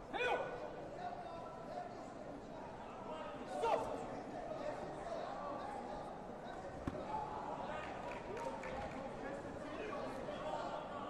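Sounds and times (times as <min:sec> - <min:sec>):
voices in a large hall: 0:00.0 - 0:11.0.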